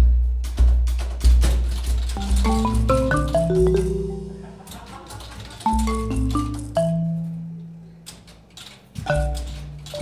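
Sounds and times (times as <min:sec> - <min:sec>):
mallet instrument notes ringing: 0:02.2 - 0:04.9, 0:05.6 - 0:07.8, 0:09.1 - 0:10.0.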